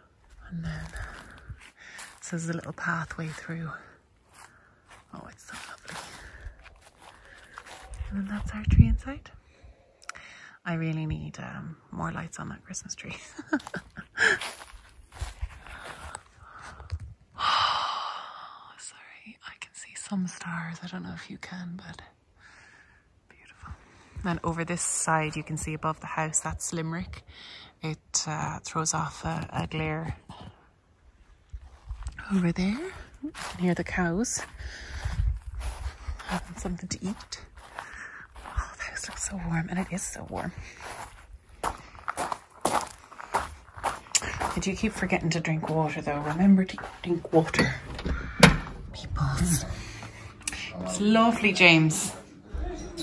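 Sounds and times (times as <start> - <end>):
footsteps walking: 0.2 - 8.7, 13.4 - 16.8, 31.6 - 52.8
faint low rumble: 42.9 - 53.0.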